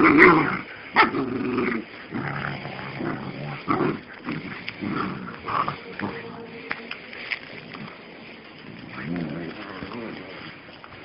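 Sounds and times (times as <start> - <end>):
puppies growling and snarling: 0.0 - 11.0.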